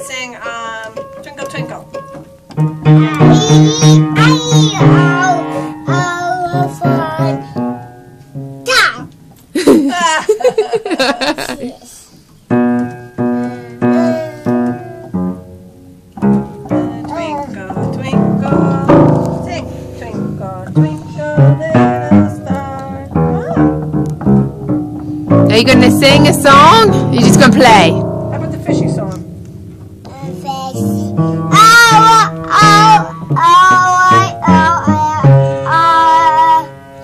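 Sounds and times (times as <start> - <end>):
child singing: 2.9 - 7.6, 13.7 - 15.2, 20.4 - 23.7, 30.1 - 36.9.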